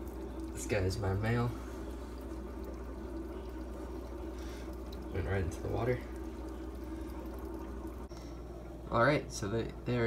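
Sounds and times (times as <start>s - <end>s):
constant low hum: 0.0s - 10.0s
water trickling: 0.0s - 10.0s.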